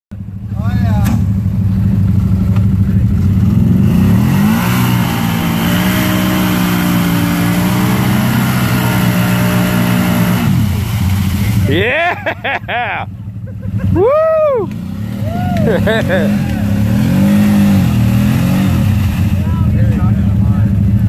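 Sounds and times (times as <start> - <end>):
vehicle engine revving: 0.1 - 21.0.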